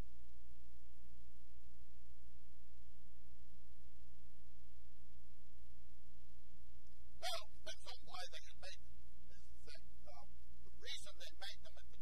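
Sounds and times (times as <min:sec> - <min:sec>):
steady low hum: 0:00.0 - 0:12.0
person speaking faintly: 0:07.2 - 0:08.7, 0:10.1 - 0:12.0.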